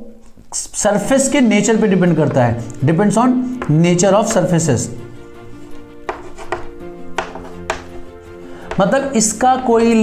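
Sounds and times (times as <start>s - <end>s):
soft background music: 0.1s - 10.0s
chalk tapping on blackboard: 3.5s - 4.6s, 5.5s - 9.0s.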